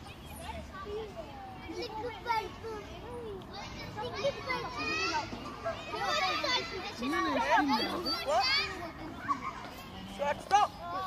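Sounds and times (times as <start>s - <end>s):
children calling out: 1.7s - 9.8s.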